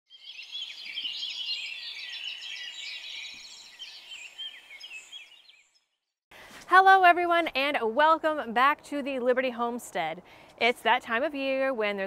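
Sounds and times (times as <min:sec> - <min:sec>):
songbirds chirping and singing: 0:00.1 - 0:06.1.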